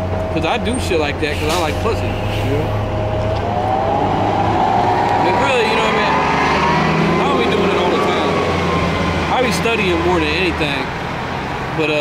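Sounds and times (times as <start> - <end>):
low steady rumble: 0.0 - 5.6
vehicle engine speeding up: 0.0 - 11.7.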